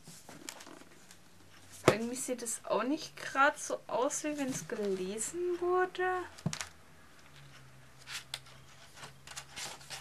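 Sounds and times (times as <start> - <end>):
book pages rustling: 0.0 - 2.0, 7.3 - 10.0.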